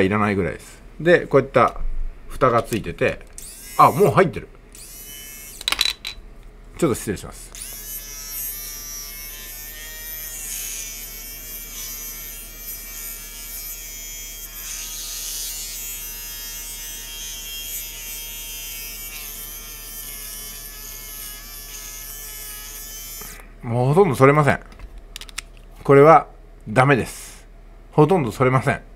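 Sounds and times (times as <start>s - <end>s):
electric shaver buzzing: 3.4s - 5.7s, 7.5s - 23.4s.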